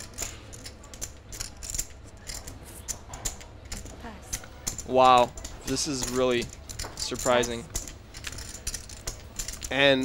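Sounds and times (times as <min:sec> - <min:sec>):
poker chips clicking: 0:00.0 - 0:10.0.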